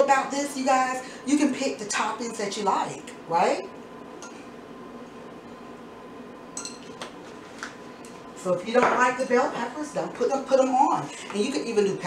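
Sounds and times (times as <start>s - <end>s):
faint steady hum: 0.0s - 12.0s
small glass bowl clinking: 6.6s - 7.0s.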